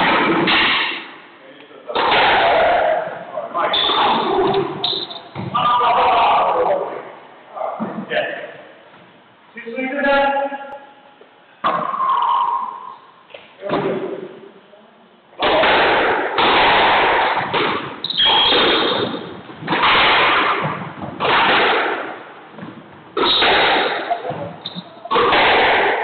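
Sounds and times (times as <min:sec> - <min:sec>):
squash ball hits echoing: 0:00.0 - 0:01.2, 0:01.9 - 0:05.6, 0:11.6 - 0:12.9, 0:15.4 - 0:26.0.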